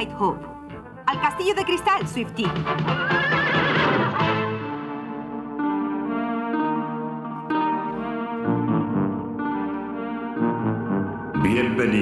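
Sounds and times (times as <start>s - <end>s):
background music: 0.0s - 12.0s
cartoon horse whinnying: 2.9s - 4.2s.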